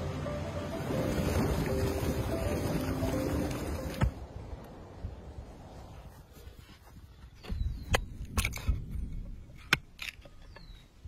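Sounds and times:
background music: 0.0s - 4.3s.

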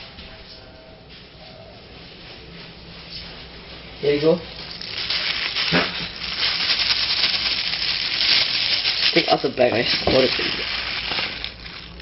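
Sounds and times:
plastic bag rustling: 4.5s - 12.0s.

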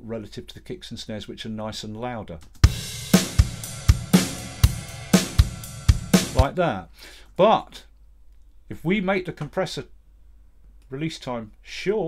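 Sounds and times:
snare drum hits: 2.7s - 6.5s.

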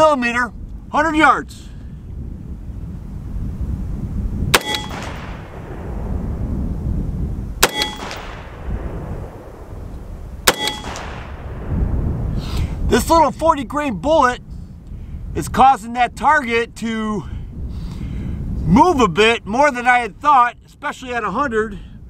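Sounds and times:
wind rumbling on microphone: 0.0s - 22.0s
gunshots echoing: 4.5s - 6.2s, 7.6s - 11.9s
metallic ring of steel targets: 4.6s - 5.4s, 7.6s - 8.4s, 10.5s - 11.2s.

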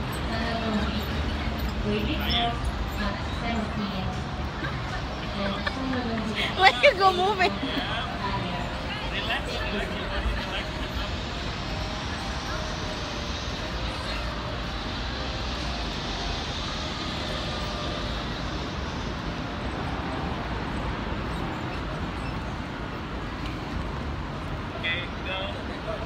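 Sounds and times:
faint voices: 0.0s - 23.8s.

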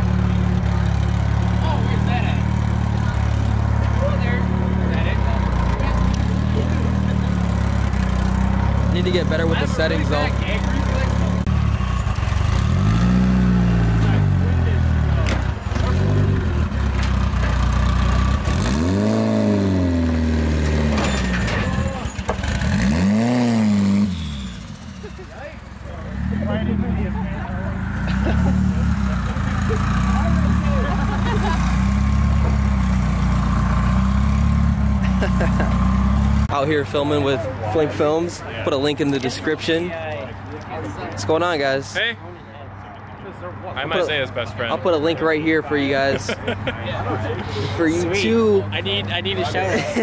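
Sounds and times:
car engine revving: 0.0s - 37.0s.

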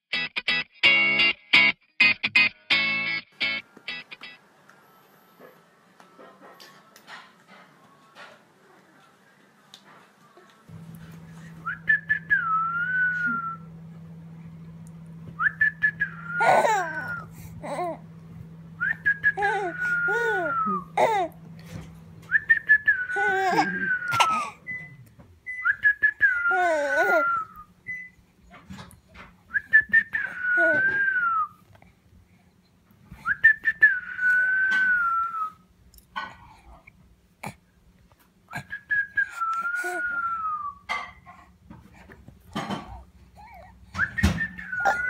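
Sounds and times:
low hum: 10.7s - 26.5s
person whistling: 11.6s - 13.7s, 15.4s - 17.4s, 18.8s - 21.0s, 22.3s - 24.9s, 25.5s - 28.1s, 29.5s - 31.6s, 33.2s - 35.6s, 38.5s - 40.9s, 44.0s - 45.0s
baby cooing: 16.3s - 18.1s, 19.2s - 21.4s, 23.1s - 24.6s, 26.2s - 27.6s, 39.6s - 40.4s, 42.6s - 43.8s, 44.7s - 45.0s.

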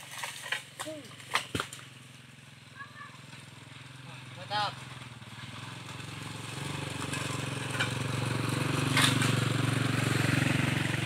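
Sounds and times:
motorcycle engine idling: 1.0s - 11.0s.

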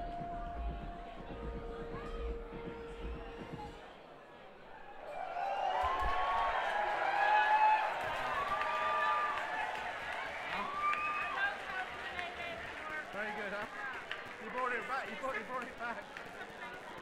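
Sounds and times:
crowd talking: 0.0s - 17.0s.

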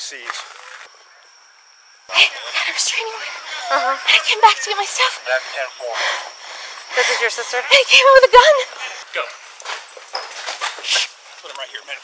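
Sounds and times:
hurried footsteps: 6.3s - 11.5s.

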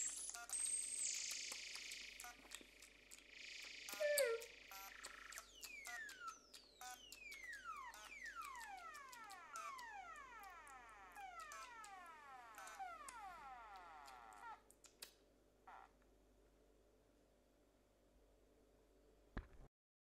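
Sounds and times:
scattered clicks: 0.0s - 13.2s
whistle-like falling tones: 3.7s - 5.8s.

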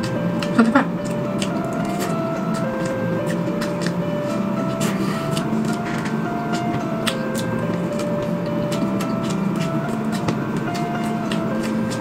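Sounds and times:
chewing: 0.0s - 12.0s
quiet background music: 0.0s - 12.0s.

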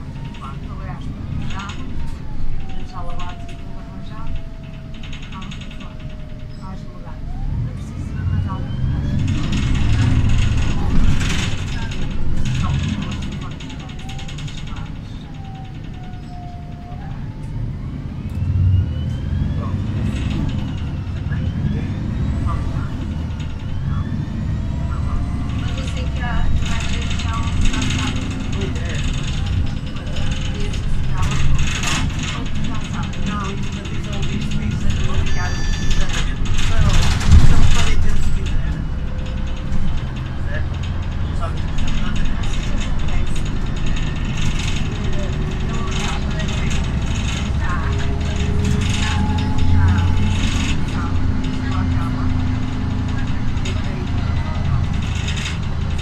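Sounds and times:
bus body rattling and knocking: 0.0s - 56.0s
bus engine drone: 0.0s - 56.0s
gearbox whine: 0.0s - 56.0s.

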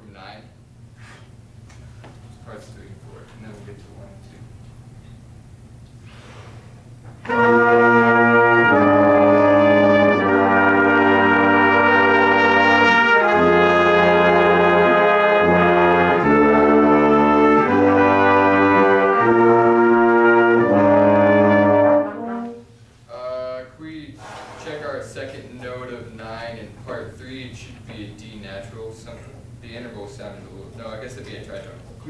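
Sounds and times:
brass ensemble playing chords: 7.2s - 22.8s.

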